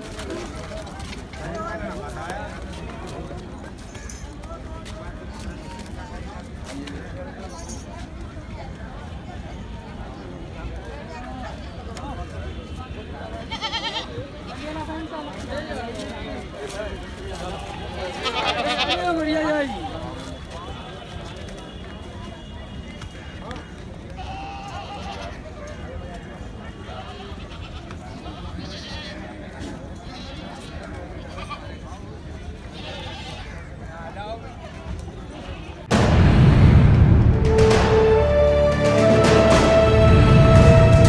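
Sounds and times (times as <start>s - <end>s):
crowd chatter: 0.0s - 41.0s
goat bleating: 13.5s - 14.1s, 17.5s - 19.2s, 24.2s - 25.4s, 27.0s - 29.2s, 32.7s - 33.6s.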